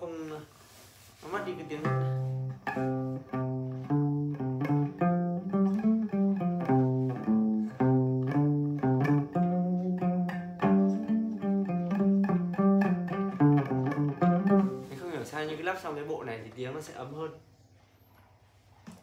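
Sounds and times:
plucked lute melody: 1.4 - 15.0.

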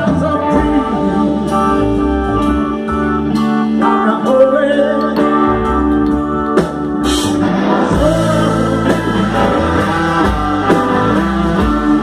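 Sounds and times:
person singing: 0.0 - 6.1, 7.0 - 12.0
soul band playing live: 0.0 - 12.0.

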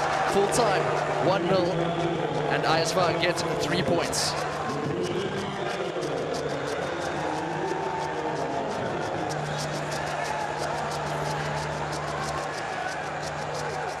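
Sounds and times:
fast steady ticking: 0.0 - 14.0
music: 0.0 - 14.0.

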